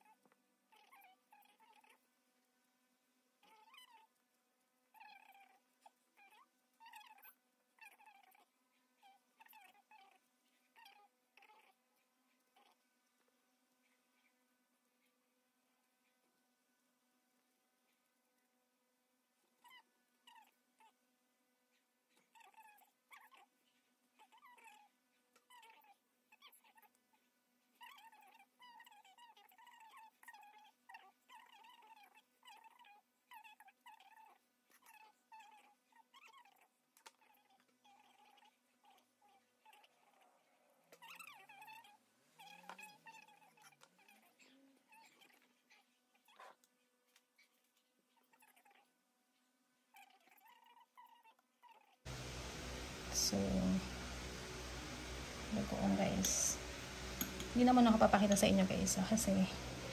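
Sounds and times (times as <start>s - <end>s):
puppy whimpering: 0.0s - 2.0s, 3.4s - 4.1s, 4.9s - 5.6s, 6.2s - 12.8s, 19.6s - 21.0s, 21.7s - 48.9s, 49.9s - 52.0s.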